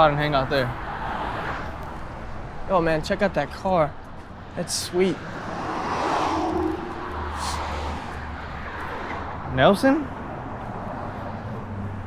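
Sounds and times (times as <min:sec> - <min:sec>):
car tyre and road noise: 0:00.0 - 0:12.0.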